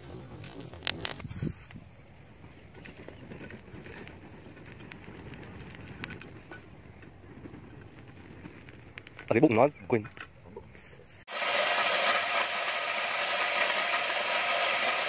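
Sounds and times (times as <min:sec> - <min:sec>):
straw fire crackling: 0:00.0 - 0:15.0.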